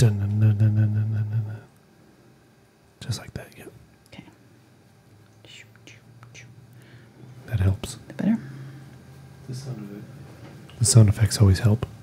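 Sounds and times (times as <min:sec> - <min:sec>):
low hum: 0:00.0 - 0:12.0
person making whispery hissing sounds: 0:05.4 - 0:06.6.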